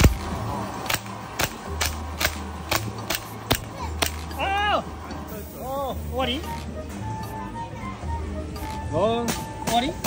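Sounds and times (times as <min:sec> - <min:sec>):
toy pistol shots: 0:00.0 - 0:04.4.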